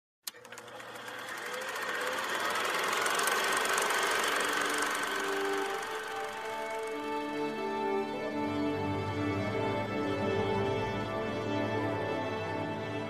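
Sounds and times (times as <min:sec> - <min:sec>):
projector click: 0:00.2 - 0:06.9
film projector clatter: 0:00.2 - 0:08.0
music notes: 0:04.8 - 0:13.0.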